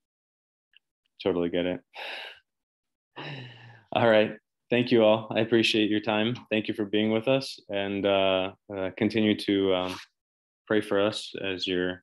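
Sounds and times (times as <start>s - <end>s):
man sighing: 3.2s - 3.8s.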